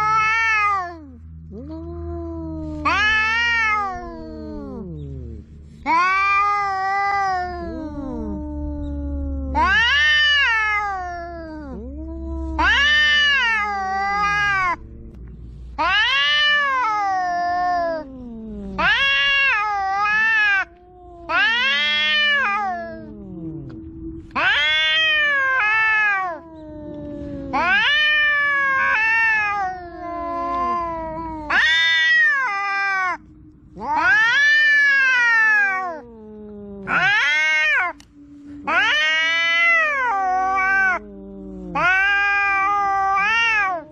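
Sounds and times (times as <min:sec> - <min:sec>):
cats caterwauling: 0:00.0 - 0:43.9
low steady tone: 0:00.7 - 0:41.8.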